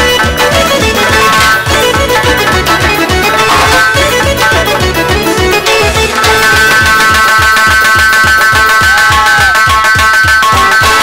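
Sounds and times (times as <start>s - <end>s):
long-held high chord: 0.0s - 8.6s
frame drum strokes: 0.8s - 4.4s.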